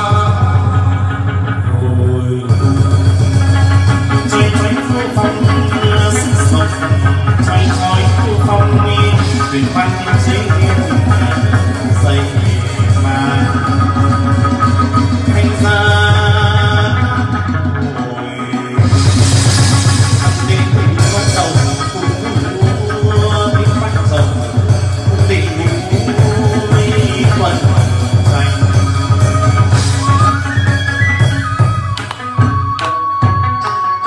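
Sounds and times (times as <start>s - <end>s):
man singing: 0.0s - 30.2s
moon lute playing: 0.8s - 32.8s
steady low bass: 18.8s - 30.3s.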